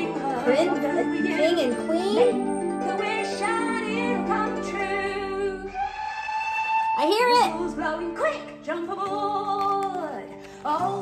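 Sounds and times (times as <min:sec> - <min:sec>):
instrumental backing: 0:00.0 - 0:11.0.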